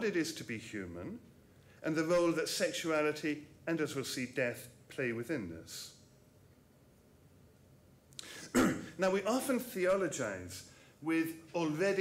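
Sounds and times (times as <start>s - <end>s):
man clearing his throat: 8.4s - 9.0s.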